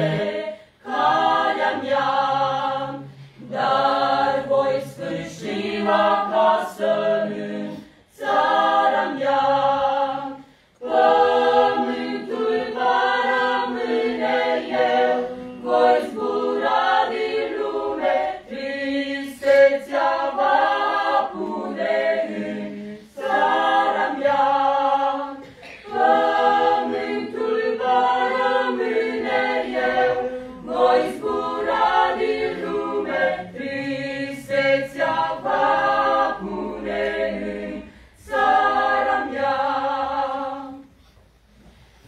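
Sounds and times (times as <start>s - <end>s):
choir singing a cappella: 0.0s - 42.0s.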